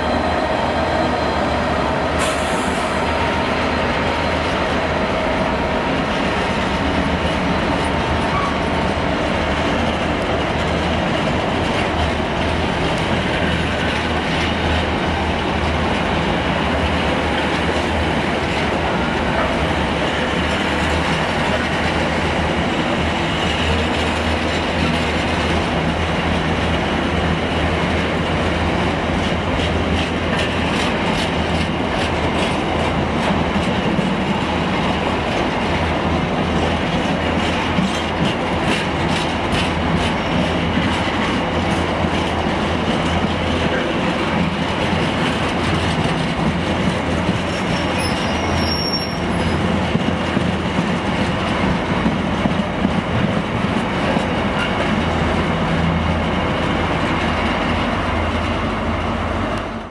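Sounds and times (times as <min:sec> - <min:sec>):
train wheels clicking over rail joints: 0:01.7 - 0:59.9
wheel squeal: 0:47.5 - 0:49.6
high-pitched brake squeal: 0:47.6 - 0:49.6.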